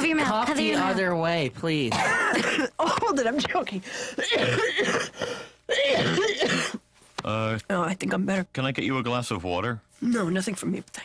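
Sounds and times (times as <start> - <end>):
man coughing and clearing throat: 1.9 - 3.0, 4.1 - 6.9.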